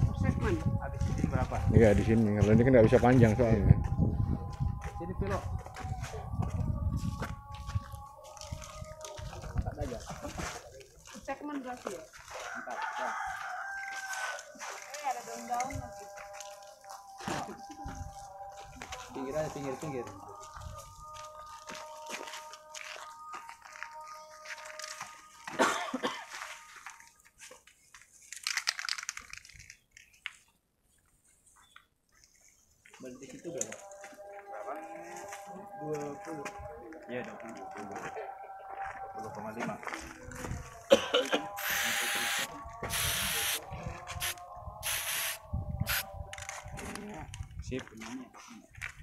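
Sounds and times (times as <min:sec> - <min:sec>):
spray paint can hissing: 0:41.6 - 0:43.6, 0:44.2 - 0:46.1.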